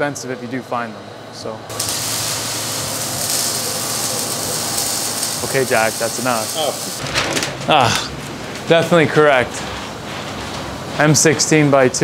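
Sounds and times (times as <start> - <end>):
shop equipment hissing: 1.7 - 7.0.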